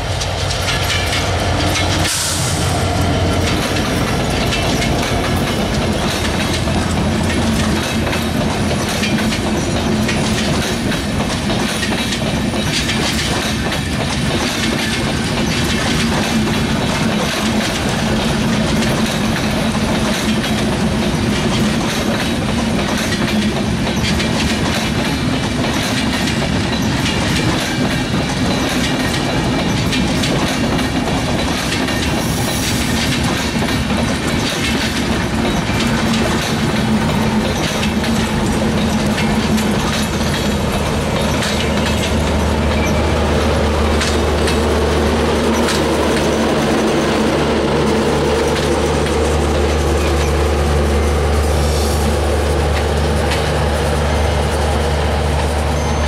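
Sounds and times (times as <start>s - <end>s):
train wheels running on rail: 0.0s - 56.0s
wheels clacking over rail joints: 0.0s - 56.0s.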